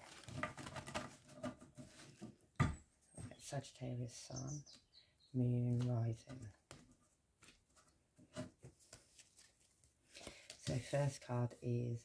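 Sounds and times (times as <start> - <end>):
cards being shuffled: 0.0 - 1.2, 8.6 - 11.4.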